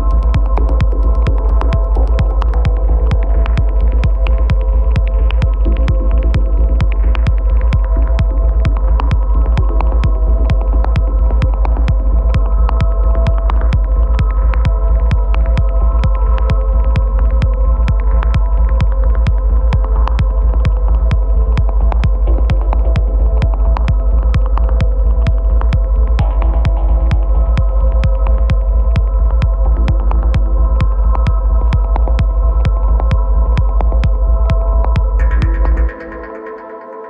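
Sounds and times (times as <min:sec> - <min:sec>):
techno kick drum: 0:00.0 - 0:36.6
deep sustained bass: 0:00.0 - 0:37.0.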